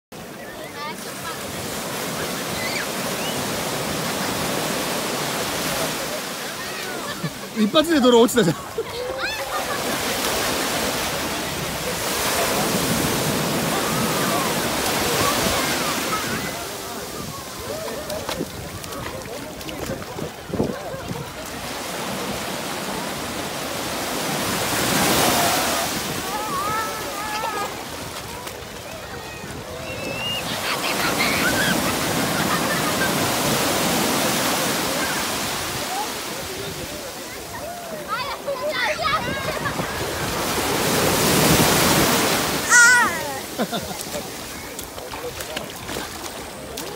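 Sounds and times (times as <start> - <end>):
ocean surf breaking on beach: 0.2 - 46.9.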